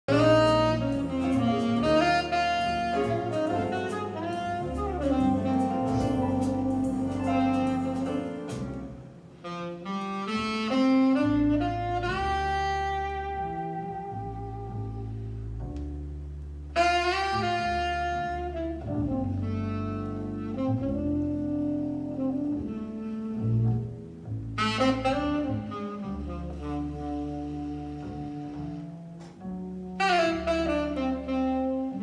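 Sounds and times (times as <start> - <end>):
saxophone long held notes: 0.1 - 15.2, 16.7 - 24.0, 24.6 - 32.0
walking double bass: 0.1 - 32.0.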